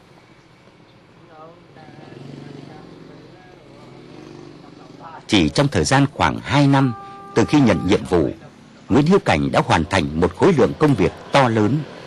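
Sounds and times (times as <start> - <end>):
engine humming: 0.0 - 12.0
faint voices: 1.2 - 11.9.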